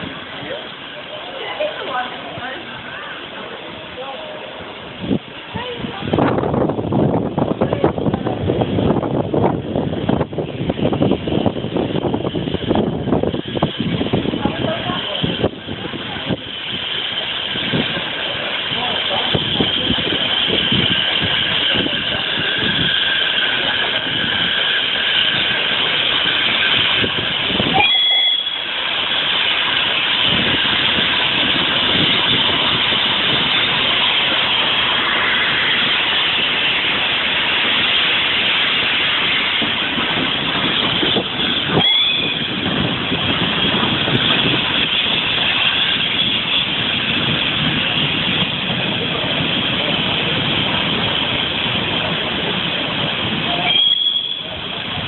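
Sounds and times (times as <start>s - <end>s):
steam hissing: 0.0s - 55.0s
train rumbling past: 0.0s - 55.0s.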